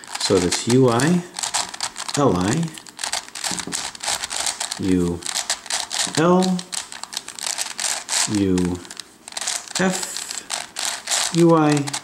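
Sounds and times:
person speaking: 0.0 - 12.0
plastic puzzle clicking and rattling: 0.0 - 12.0.

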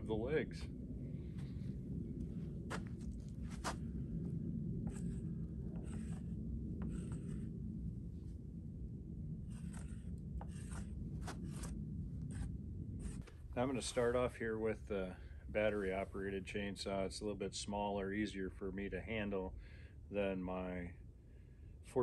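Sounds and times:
low background rumble: 0.0 - 22.0
marker scratching on wood: 4.8 - 7.6, 9.5 - 13.3.

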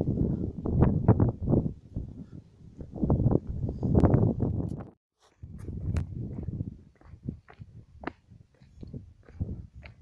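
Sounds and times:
footsteps on stony dirt trail: 5.2 - 10.0.

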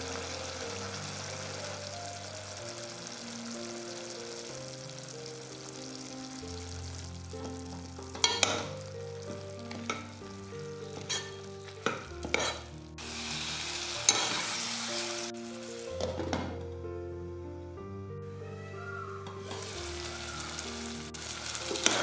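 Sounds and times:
food sizzling: 0.0 - 16.7, 18.4 - 22.0
spoon scraping a cooking pot: 10.9 - 12.7, 14.1 - 14.5.

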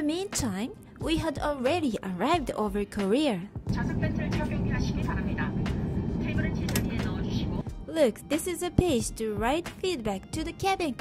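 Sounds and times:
aircraft cabin rush: 3.7 - 7.6
crew announcement over pa: 6.2 - 7.6.

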